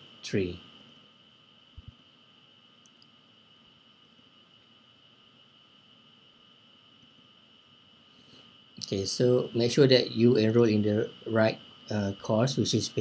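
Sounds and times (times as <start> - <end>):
faint high-pitched whine: 0.0 - 13.0
person speaking: 8.8 - 13.0.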